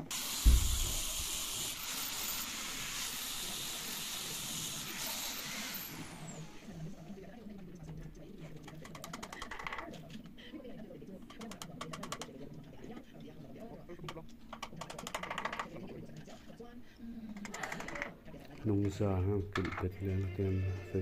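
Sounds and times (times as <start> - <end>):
electric sander on wood: 0.2 - 6.5.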